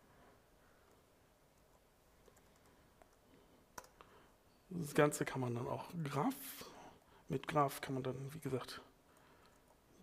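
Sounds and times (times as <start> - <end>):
man talking: 4.7 - 9.0.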